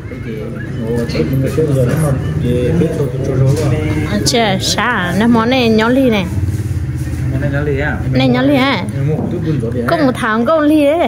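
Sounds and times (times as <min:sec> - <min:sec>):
people talking in low voices: 0:00.0 - 0:11.0.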